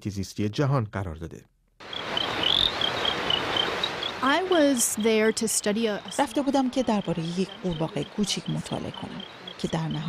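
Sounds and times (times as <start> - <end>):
steady forest hiss: 1.8 - 10.0.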